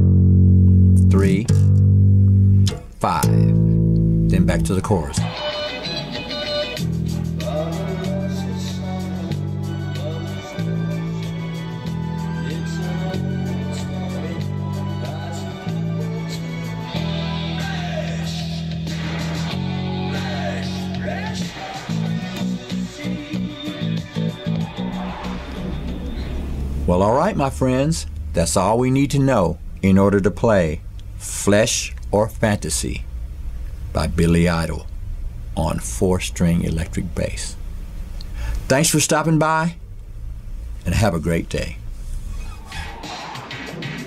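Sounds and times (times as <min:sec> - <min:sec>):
electric bass guitar notes: 0:00.0 - 0:43.1.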